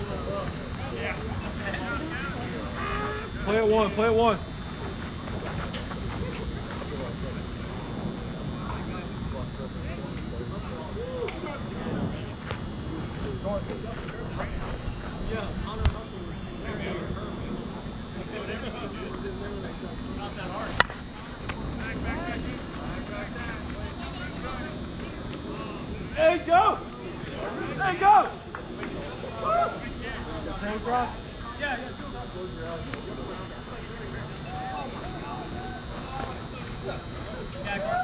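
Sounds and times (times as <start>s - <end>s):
faint players' voices and calls: 0.0s - 38.0s
bat cracking on ball: 20.8s - 21.6s.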